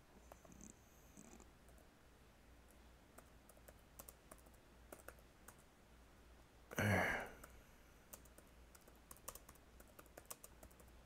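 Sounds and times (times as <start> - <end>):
low steady hum: 0.0 - 11.0
typing on computer keyboard: 3.2 - 5.6, 8.1 - 11.0.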